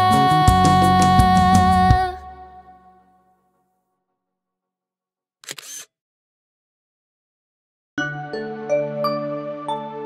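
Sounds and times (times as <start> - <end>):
camera shutter snap: 5.4 - 5.9.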